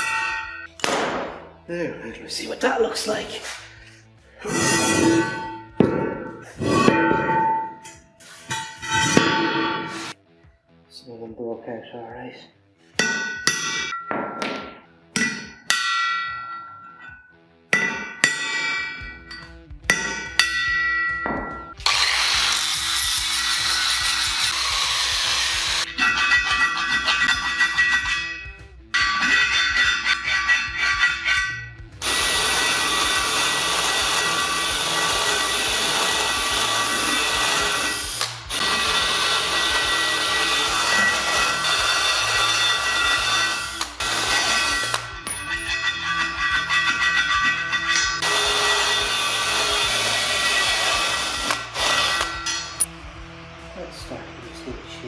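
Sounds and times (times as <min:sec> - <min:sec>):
metal wheel rim struck and ringing: 0:00.0 - 0:00.7, 0:04.6 - 0:10.0, 0:13.0 - 0:21.8, 0:25.8 - 0:37.6, 0:38.8 - 0:49.1, 0:52.2 - 0:52.9
power tool cutting metal: 0:21.8 - 0:26.3, 0:32.0 - 0:52.9.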